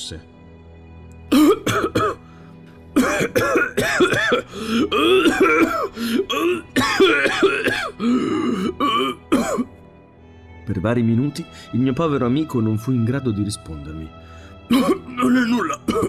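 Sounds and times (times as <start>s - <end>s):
background music: 0.0s - 16.0s
man coughing: 1.3s - 2.2s, 2.9s - 9.7s, 14.7s - 16.0s.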